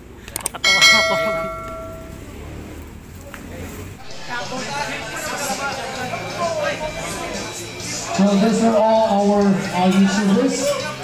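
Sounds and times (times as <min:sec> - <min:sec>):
bright bell ding: 0:00.6 - 0:02.3.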